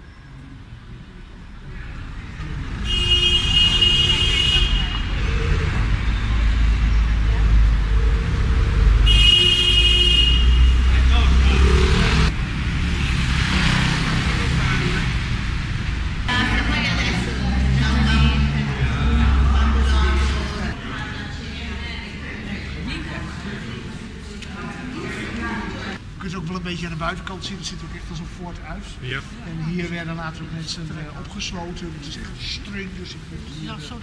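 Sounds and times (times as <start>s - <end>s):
low engine rumble of traffic: 0.0s - 34.0s.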